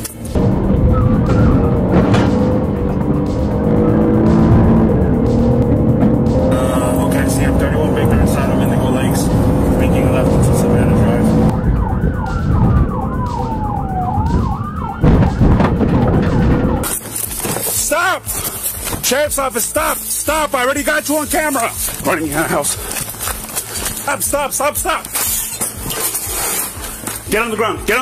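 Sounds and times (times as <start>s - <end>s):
car engine and road noise: 0.0s - 27.2s
police siren wailing: 0.3s - 17.0s.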